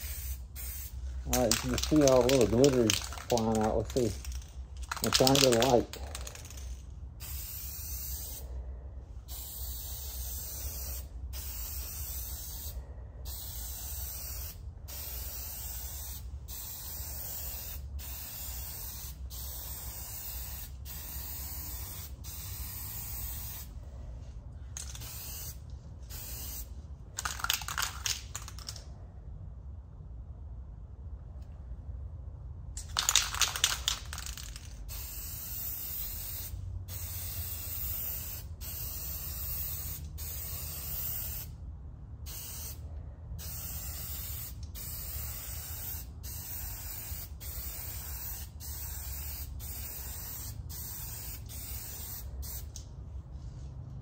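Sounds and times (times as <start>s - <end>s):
spray can rattling: 0.0s - 8.3s, 13.3s - 23.7s, 24.7s - 28.8s, 32.8s - 41.5s, 43.4s - 52.8s
spray can hissing: 0.0s - 8.4s, 9.3s - 23.7s, 24.8s - 28.8s, 32.8s - 41.5s, 43.4s - 52.8s.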